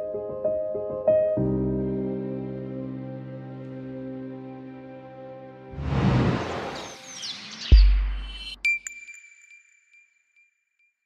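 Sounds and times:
whoosh: 0:05.8 - 0:07.2
birds chirping: 0:06.2 - 0:08.5.

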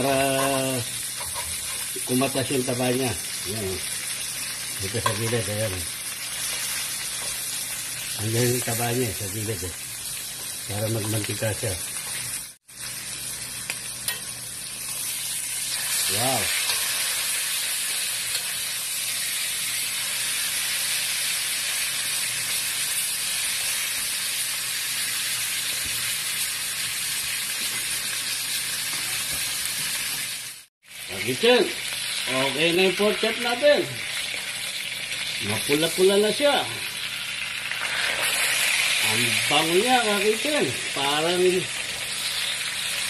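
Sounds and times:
meat sizzling in hot oil: 0:00.0 - 0:43.0.

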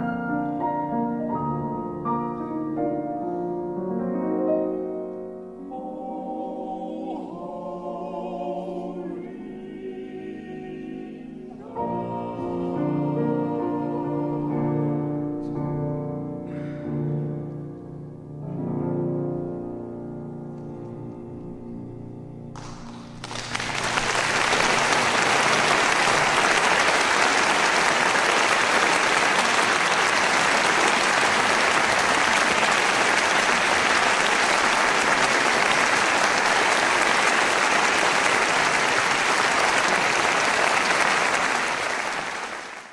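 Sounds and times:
piano and male voices chord: 0:00.0 - 0:19.6
audience applause: 0:22.6 - 0:42.9.

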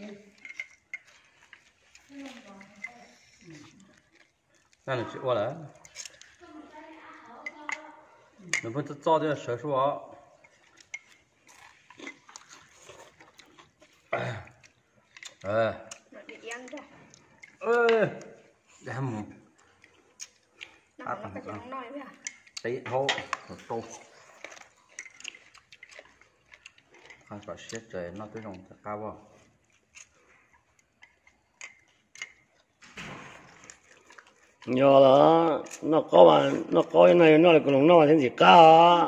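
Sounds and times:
people eating noodles: 0:00.0 - 0:39.0
chopsticks clicking against plates: 0:00.3 - 0:04.8, 0:05.7 - 0:06.4, 0:07.4 - 0:07.8, 0:08.5 - 0:08.8, 0:10.4 - 0:13.9, 0:14.6 - 0:18.5, 0:19.5 - 0:20.9, 0:22.1 - 0:28.6, 0:29.6 - 0:32.7.

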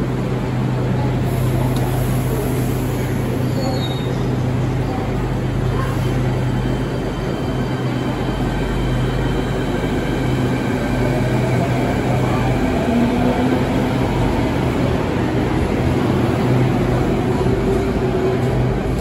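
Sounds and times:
subway train rumbling: 0:00.0 - 0:19.0.

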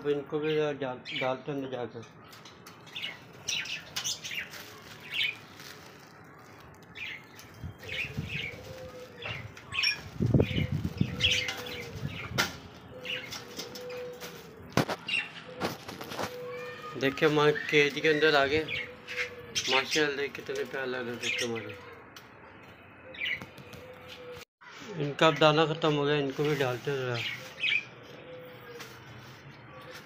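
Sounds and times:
low drawn-out bird calls: 0:02.0 - 0:22.0
budgerigars chirping and chattering: 0:07.0 - 0:12.4, 0:13.0 - 0:14.0, 0:17.1 - 0:21.9.

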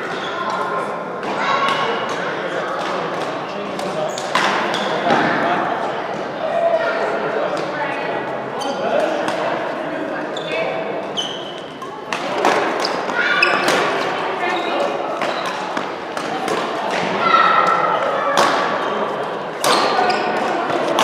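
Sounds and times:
shoe squeaks: 0:08.6 - 0:09.0, 0:10.3 - 0:11.9, 0:12.8 - 0:15.6, 0:19.7 - 0:20.5
racket hitting shuttlecock: 0:11.6 - 0:14.1, 0:15.2 - 0:17.2, 0:18.3 - 0:18.8, 0:19.6 - 0:21.0.

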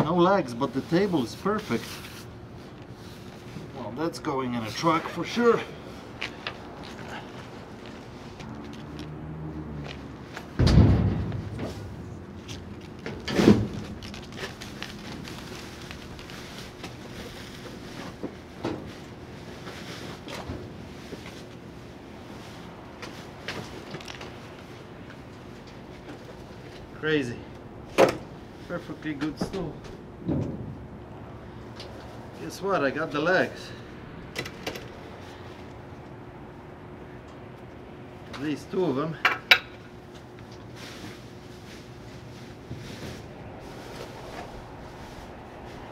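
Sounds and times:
heavy thuds on steel dumpster: 0:10.6 - 0:11.9.

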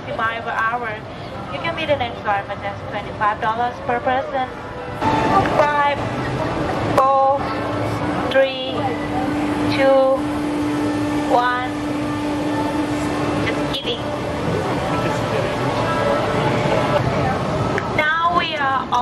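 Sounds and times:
mechanical hum: 0:00.0 - 0:19.0.

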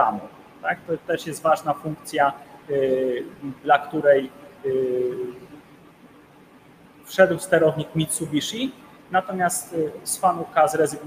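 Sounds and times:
man's drawn-out hesitation sound: 0:00.0 - 0:05.4.

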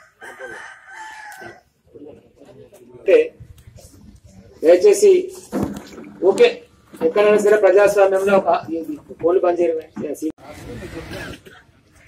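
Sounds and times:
rooster crowing: 0:00.0 - 0:01.7.

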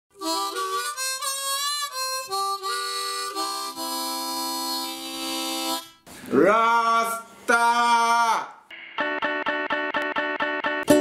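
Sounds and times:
harmonica playing: 0:00.1 - 0:06.0.

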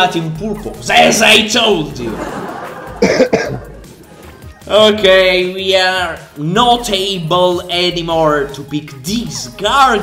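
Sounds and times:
man coughing: 0:03.0 - 0:03.7.

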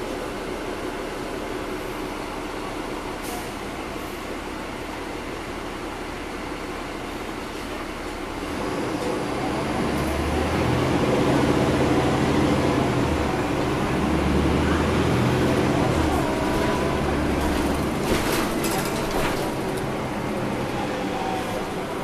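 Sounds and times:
bus diesel engine: 0:00.0 - 0:22.0.

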